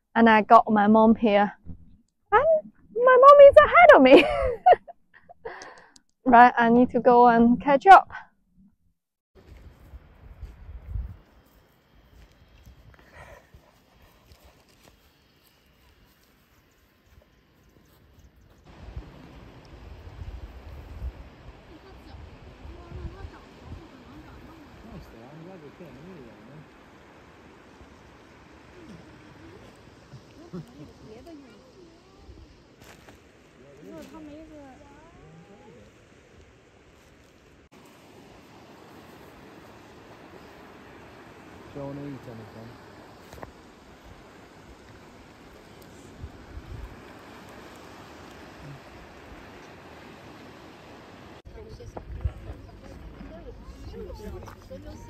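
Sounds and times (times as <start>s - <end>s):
wind rumble on microphone: 9.4s - 11.3s, 18.7s - 25.1s, 46.1s - 49.9s, 51.5s - 55.0s.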